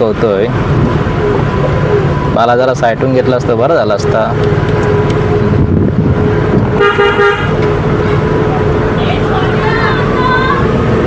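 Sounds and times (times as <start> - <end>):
car engine and road rumble: 0.0 - 11.0
vehicle horn toot: 6.7 - 7.6.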